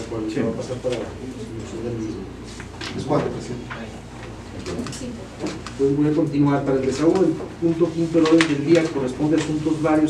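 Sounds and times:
low murmured talk: 0.0s - 10.0s.

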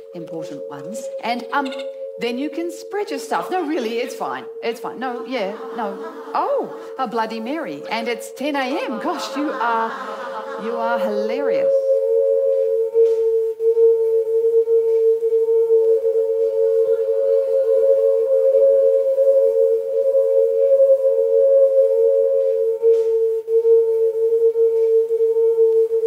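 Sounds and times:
sustained two-tone drone: 0.0s - 26.0s.

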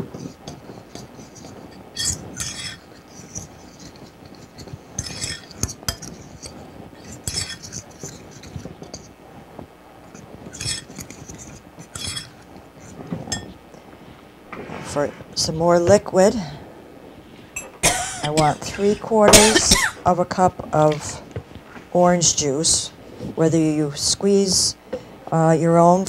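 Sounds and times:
metal spoon stirring in a bowl: 0.0s - 9.1s, 10.1s - 13.6s.

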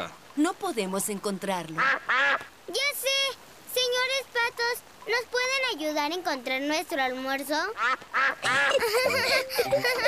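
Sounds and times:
cartoon ducks quacking: 7.7s - 10.0s.

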